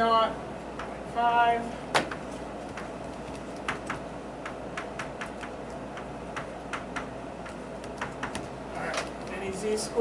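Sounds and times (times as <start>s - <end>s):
chalk tapping on blackboard: 2.7s - 8.5s.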